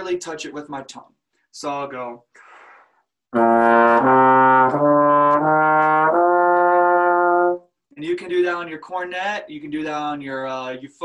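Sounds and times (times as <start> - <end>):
trombone playing ascending scale: 3.4 - 7.6.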